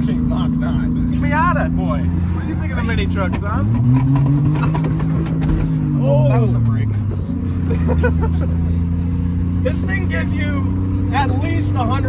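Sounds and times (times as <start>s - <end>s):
tyre and road noise: 0.0s - 12.0s.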